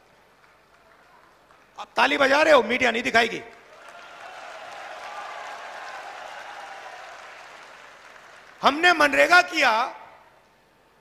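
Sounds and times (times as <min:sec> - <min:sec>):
large crowd applauding: 0:00.0 - 0:01.9, 0:03.2 - 0:09.1.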